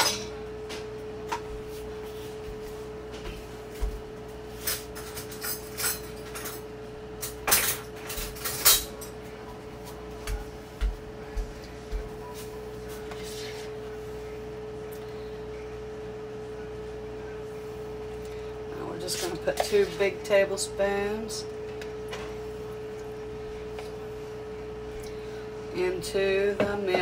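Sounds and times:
steady hum: 0.0s - 27.0s.

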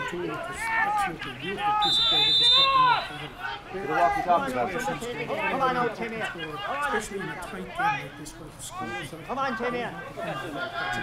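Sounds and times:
man giving sports commentary: 0.0s - 11.0s.

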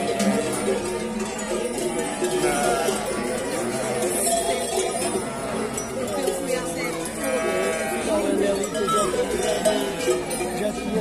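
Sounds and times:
people talking: 0.0s - 11.0s
sheep bells clanking: 0.0s - 11.0s
sheep bleating: 2.0s - 4.2s, 7.2s - 10.3s.

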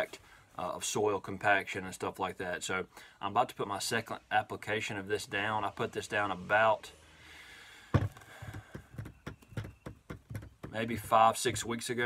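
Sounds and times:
light knocks of jug: 7.9s - 11.7s
plastic jug thump: 7.9s - 11.7s.

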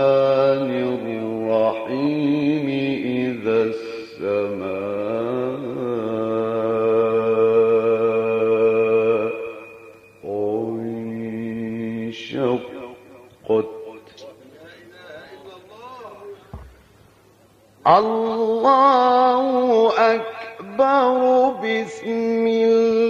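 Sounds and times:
man chanting melodically: 0.0s - 16.7s, 17.8s - 23.0s.

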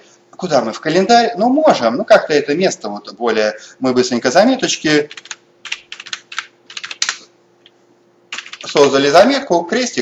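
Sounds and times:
typing on computer keyboard: 5.1s - 7.2s, 8.3s - 9.0s.

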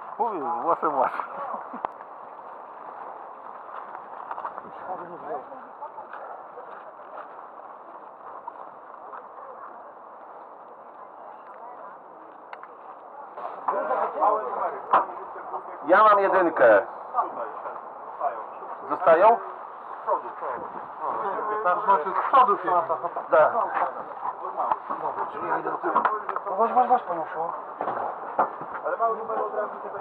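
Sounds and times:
men talking: 0.1s - 1.8s, 4.6s - 5.6s, 13.5s - 27.7s, 28.6s - 30.0s.

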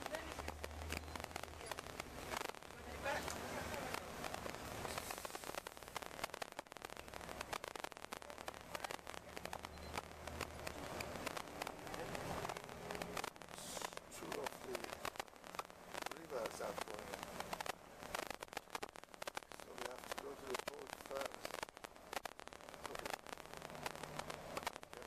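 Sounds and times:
indistinct voices: 0.0s - 5.4s, 6.9s - 15.0s, 16.0s - 17.6s, 19.5s - 21.6s
dense constant crackle: 0.0s - 25.0s
bus low hum: 8.6s - 14.4s.

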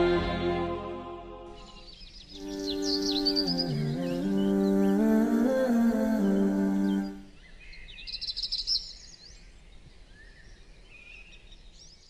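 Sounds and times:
hummed vocal chord: 0.0s - 1.8s, 2.4s - 7.3s
birds chirping: 1.5s - 11.7s.

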